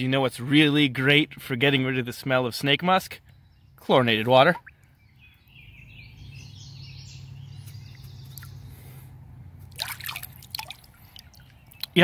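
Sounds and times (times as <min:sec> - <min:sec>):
water splashes and drips: 0:04.4 - 0:04.9, 0:08.2 - 0:08.7, 0:09.6 - 0:12.0
hand swishing in water: 0:09.6 - 0:11.4.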